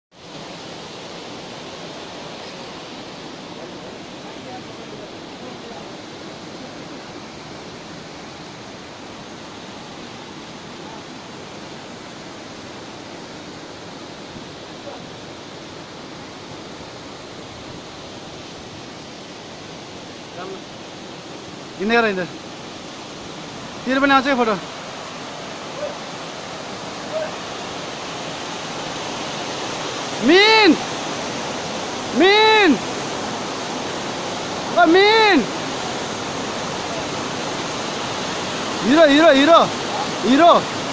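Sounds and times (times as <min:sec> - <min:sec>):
river water rushing: 0:00.1 - 0:40.9.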